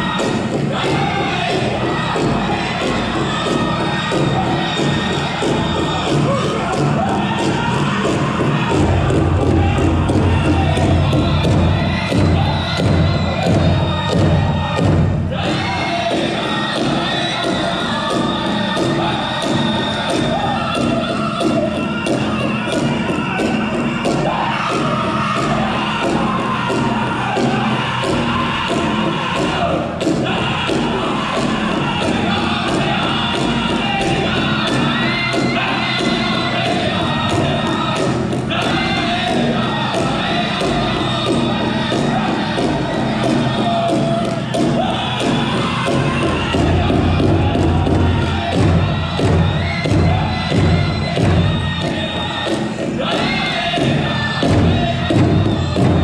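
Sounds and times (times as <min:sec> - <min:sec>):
big drum steady beat: 0:00.0 - 0:56.0
crowd noise: 0:00.0 - 0:56.0
drum group singing: 0:00.0 - 0:56.0.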